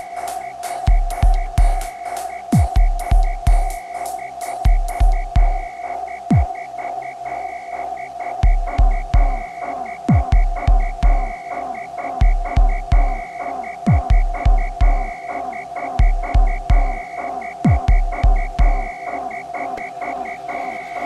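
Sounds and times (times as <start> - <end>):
heavy bass kick drums: 0.9 - 1.9, 2.6 - 3.8, 4.7 - 5.7, 6.3 - 6.5, 8.4 - 9.4, 10.1 - 11.4, 12.2 - 13.2, 13.9 - 15.2, 16.0 - 17.0, 17.6 - 18.9.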